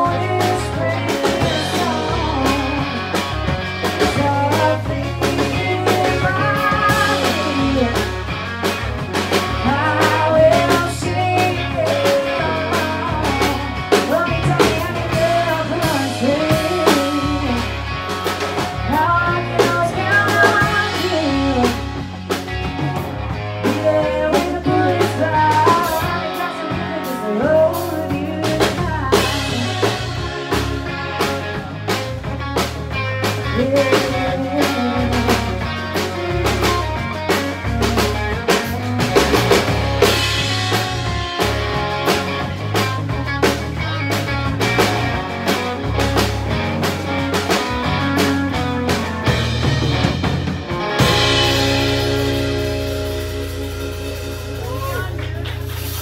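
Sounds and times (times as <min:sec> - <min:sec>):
bass guitar: 0:00.0 - 0:56.0
drum kit beating: 0:00.0 - 0:56.0
electric guitar: 0:00.0 - 0:56.0.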